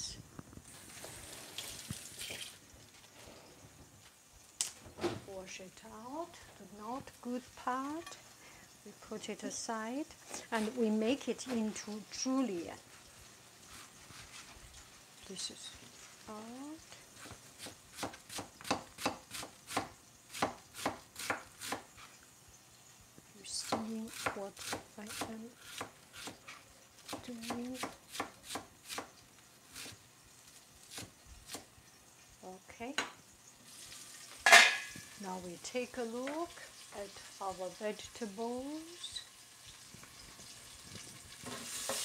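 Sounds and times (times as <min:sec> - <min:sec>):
tap water running: 0:00.7 - 0:03.0.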